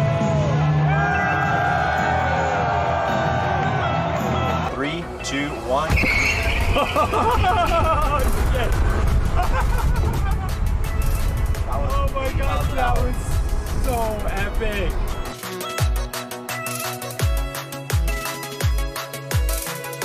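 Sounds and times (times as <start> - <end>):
music: 0.0 - 20.0
people whooping and laughing: 6.4 - 10.6.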